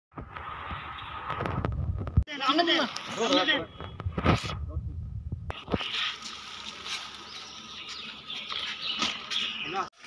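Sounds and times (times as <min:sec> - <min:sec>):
wind rumbling on microphone: 0:00.1 - 0:02.3, 0:03.8 - 0:05.9.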